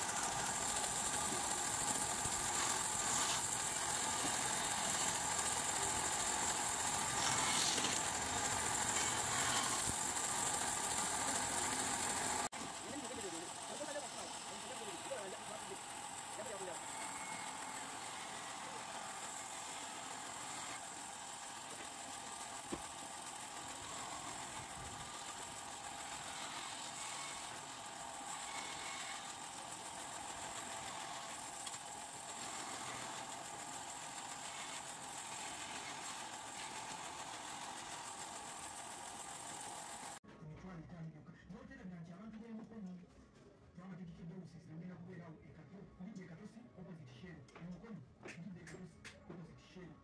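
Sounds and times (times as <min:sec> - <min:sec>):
band saw cutting wood: 0:00.0 - 0:40.2.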